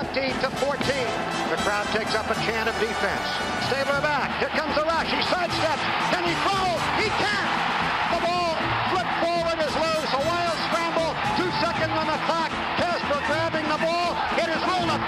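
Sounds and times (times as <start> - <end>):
sports announcer commentating: 0.0 - 15.0
stadium crowd noise: 0.0 - 15.0.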